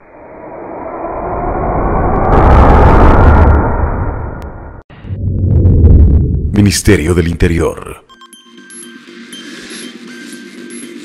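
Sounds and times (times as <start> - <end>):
deep rumble: 0.0 - 6.8.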